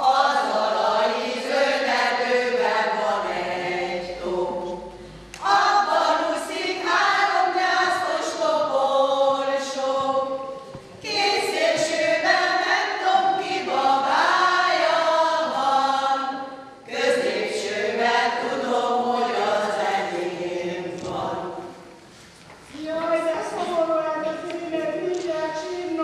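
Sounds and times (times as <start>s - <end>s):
women singing unaccompanied: 0.0s - 21.8s.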